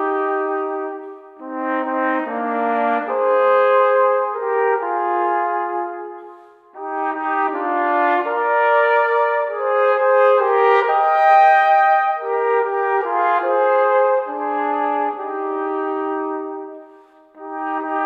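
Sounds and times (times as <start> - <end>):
brass instruments playing folk tune: 0.0 - 18.0.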